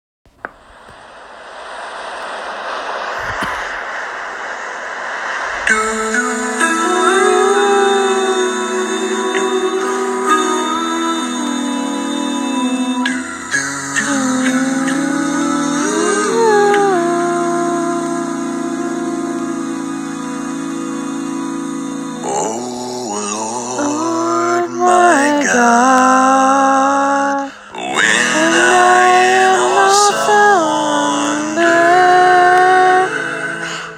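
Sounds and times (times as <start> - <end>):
a cappella harmonised chords: 3.0 - 33.9.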